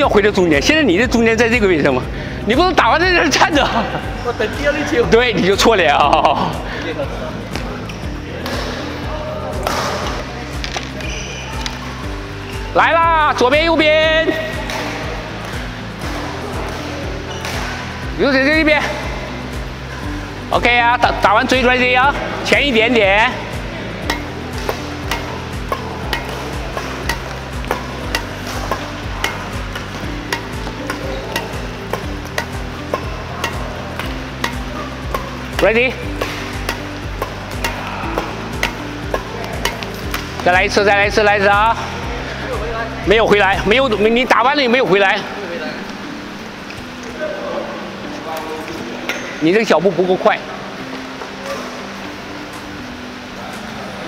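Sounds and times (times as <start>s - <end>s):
background music with low notes: 0.0s - 54.0s
sports hall background: 0.0s - 54.0s
rackets striking shuttlecocks: 9.5s - 12.0s, 14.5s - 18.0s, 23.3s - 41.6s.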